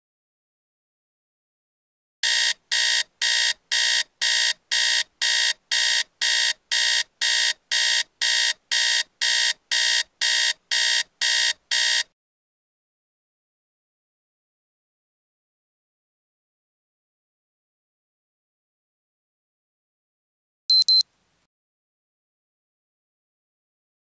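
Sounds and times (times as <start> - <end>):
phone alarm beeping: 2.2 - 12.1, 20.7 - 21.0.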